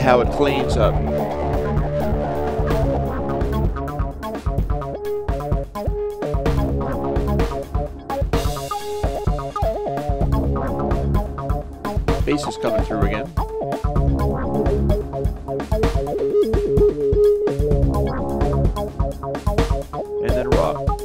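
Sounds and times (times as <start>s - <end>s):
band mix playing: 0.0s - 21.0s.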